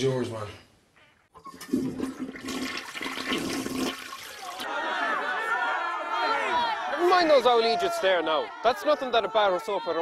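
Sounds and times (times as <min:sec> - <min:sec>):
toilet flushing: 0:01.4 - 0:04.5.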